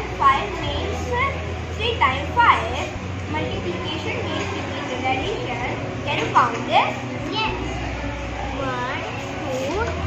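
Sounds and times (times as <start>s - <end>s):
children chattering: 0.0s - 10.0s
steady low hum: 0.0s - 10.0s.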